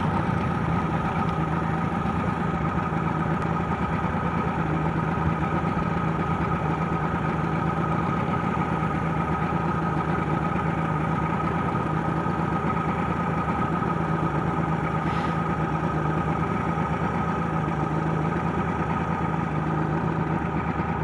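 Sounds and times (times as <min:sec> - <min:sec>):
boat motor running: 0:00.0 - 0:21.0.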